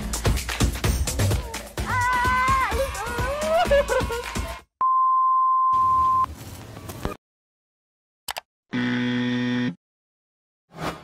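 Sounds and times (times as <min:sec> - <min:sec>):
electronic buzzer tone: 0:08.7 - 0:09.8.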